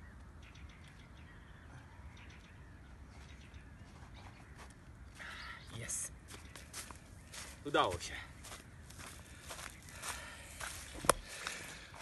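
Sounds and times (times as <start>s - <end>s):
footsteps on dry reeds: 6.2s - 12.0s.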